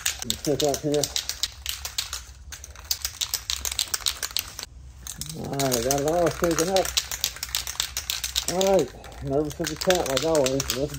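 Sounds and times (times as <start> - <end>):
spray can rattling when shaken: 0.0 - 10.9.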